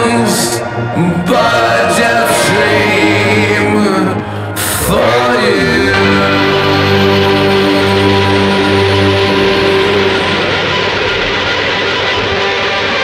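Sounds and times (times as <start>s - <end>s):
loud rock music: 0.0s - 13.0s
low bass notes: 0.0s - 13.0s.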